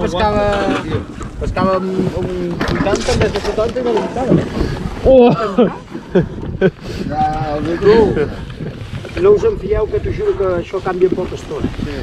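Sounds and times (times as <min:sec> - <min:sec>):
people talking: 0:00.0 - 0:05.9, 0:07.0 - 0:08.5, 0:09.1 - 0:12.0.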